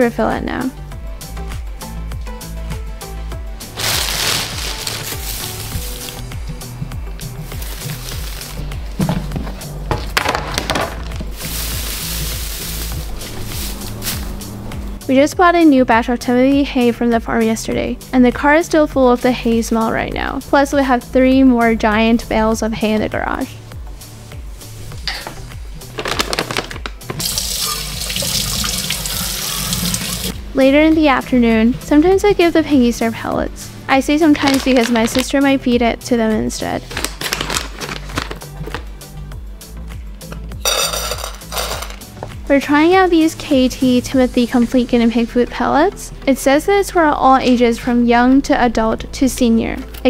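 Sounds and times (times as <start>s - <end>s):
background music: 0.0s - 50.0s
plastic bag crinkling: 3.7s - 6.2s, 7.4s - 9.0s, 25.9s - 27.4s, 34.4s - 35.3s, 36.9s - 38.9s
dry hay rustling: 3.7s - 6.3s, 7.3s - 9.0s, 11.3s - 14.5s
tap water running into bowl: 27.2s - 30.3s.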